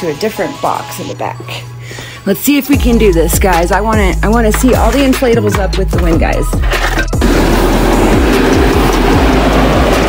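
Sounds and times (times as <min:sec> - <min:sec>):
background music with regular beat: 0:00.0 - 0:10.0
blower fans rushing: 0:07.2 - 0:10.0.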